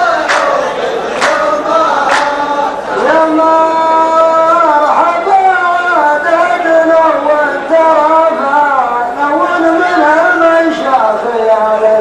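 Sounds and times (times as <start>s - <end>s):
group handclaps: 0.0s - 2.8s
men chanting in unison: 0.0s - 7.6s.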